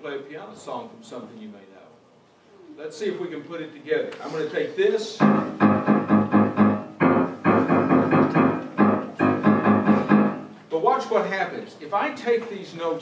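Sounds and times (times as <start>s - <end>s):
grand piano repeated chord: 5.2s - 10.6s.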